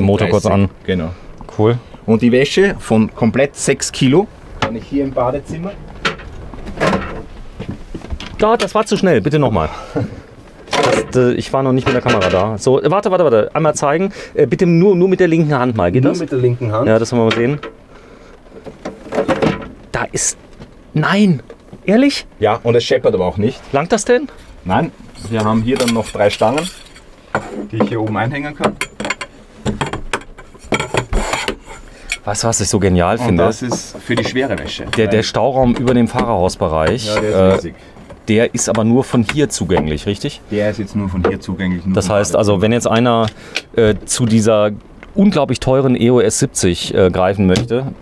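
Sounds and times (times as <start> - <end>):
metal rack scraping clatter: 25.2 - 27.8, 28.8 - 32.3
metal rods clicking and knocking: 25.3 - 32.4, 33.4 - 37.7.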